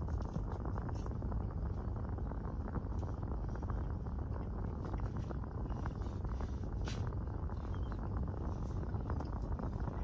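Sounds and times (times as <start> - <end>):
faint crackles and clicks: 0.0 - 10.0
low rumble inside car: 0.0 - 10.0.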